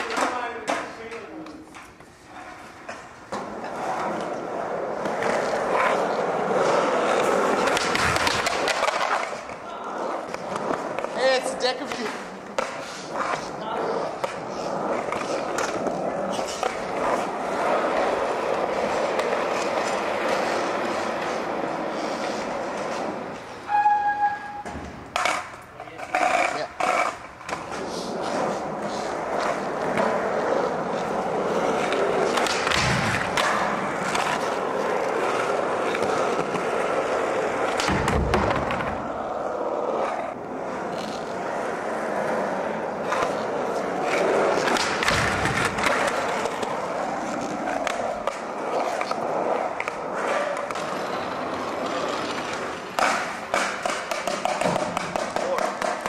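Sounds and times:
skateboard clacks and knocks: 0:00.0 - 0:01.8, 0:04.9 - 0:13.5, 0:24.6 - 0:56.0
skateboard wheels rolling on concrete: 0:00.0 - 0:56.0.

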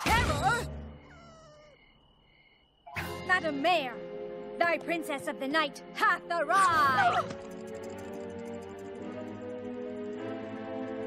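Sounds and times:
cartoon pony whimpering: 0:01.0 - 0:01.8, 0:06.6 - 0:07.5.

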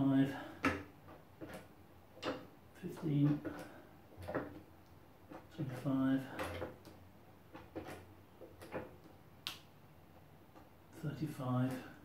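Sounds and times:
hydraulic jack clunking and creaking: 0:00.3 - 0:04.7, 0:05.3 - 0:09.0.

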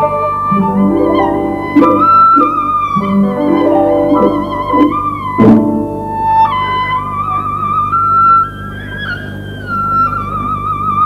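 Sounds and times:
bowed fiddle melody: 0:00.0 - 0:06.8
string orchestra accompaniment: 0:00.0 - 0:07.1.

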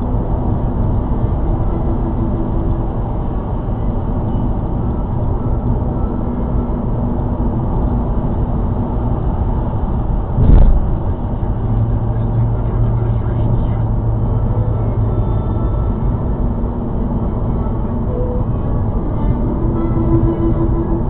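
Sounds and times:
car cabin road rumble: 0:00.0 - 0:21.0
loud thump: 0:10.4 - 0:11.0.

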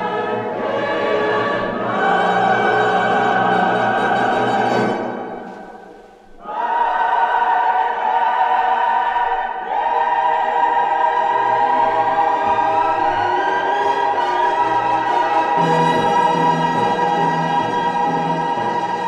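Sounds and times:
orchestral music with choir: 0:00.0 - 0:19.0.

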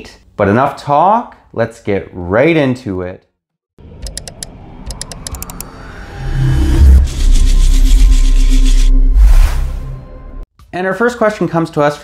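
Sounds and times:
rising sweep: 0:03.8 - 0:10.4
sharp clicks: 0:04.0 - 0:05.7
deep bass tone: 0:04.7 - 0:10.4.

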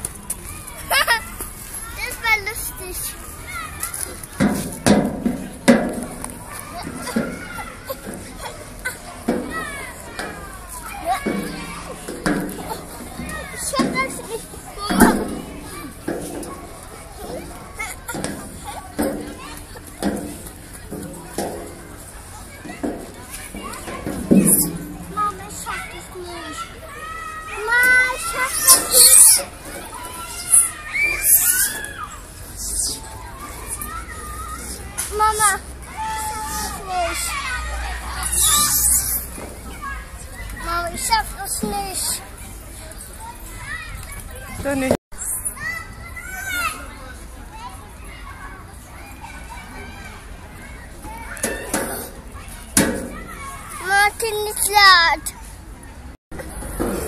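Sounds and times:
child's high-pitched calls and babble: 0:23.6 - 0:39.2, 0:39.8 - 0:42.3, 0:45.2 - 0:50.0, 0:53.1 - 0:55.5
child squealing and babbling: 0:28.4 - 0:29.5, 0:30.4 - 0:33.1, 0:38.2 - 0:39.3.

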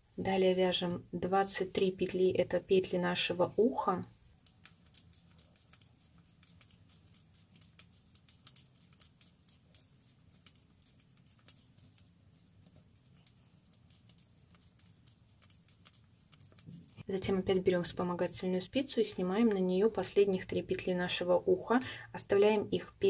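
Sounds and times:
knitting needles clicking: 0:04.4 - 0:17.1.

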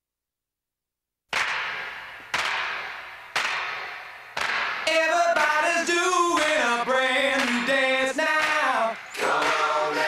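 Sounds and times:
sharp percussive cracks: 0:01.3 - 0:10.0.

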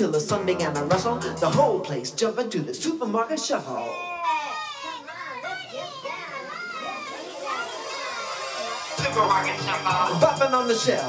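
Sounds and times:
children chattering and calling out: 0:03.7 - 0:09.6.

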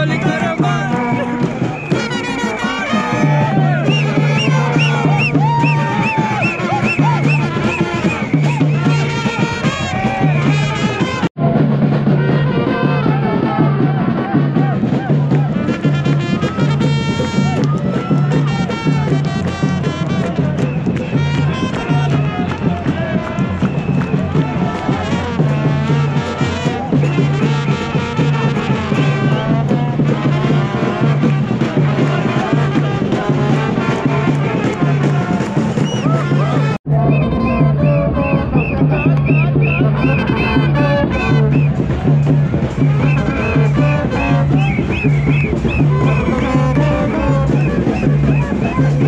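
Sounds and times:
brass horns playing: 0:00.0 - 0:49.0
crowd noise: 0:00.0 - 0:49.0
pulsing bass line: 0:00.0 - 0:49.0
steady drum beat: 0:00.0 - 0:49.0.

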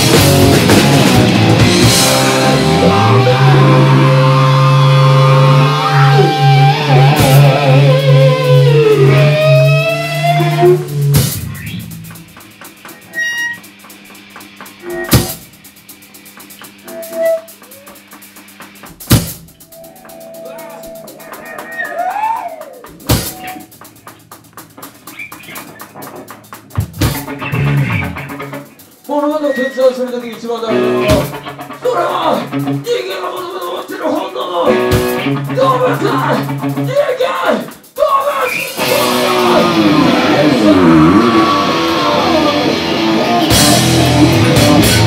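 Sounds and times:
distorted electric guitar chord: 0:00.0 - 0:12.4, 0:29.4 - 0:32.9, 0:38.8 - 0:45.0
drum and cymbal hit: 0:00.0 - 0:33.9, 0:34.6 - 0:45.0
live rock band: 0:00.0 - 0:45.0.

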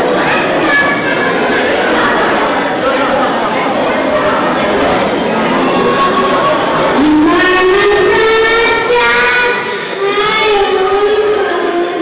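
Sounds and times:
girl singing into a microphone: 0:05.6 - 0:12.0.

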